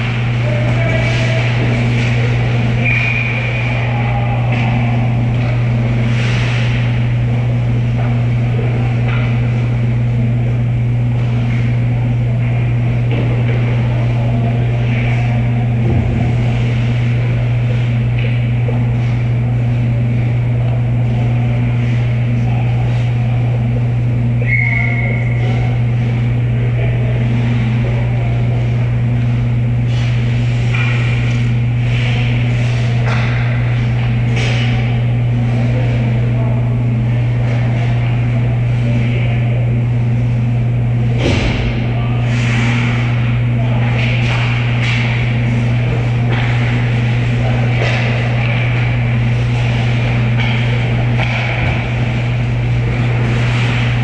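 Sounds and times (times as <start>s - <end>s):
hockey sticks and puck clacking: 0.0s - 7.0s, 27.3s - 36.1s, 42.4s - 54.0s
low machine hum: 0.0s - 54.0s
referee's whistle blast: 24.4s - 25.4s.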